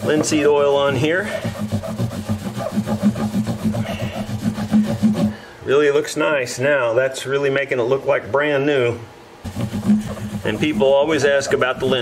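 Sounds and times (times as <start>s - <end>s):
cloth rubbing guitar fingerboard: 0.0s - 5.4s, 9.4s - 12.0s.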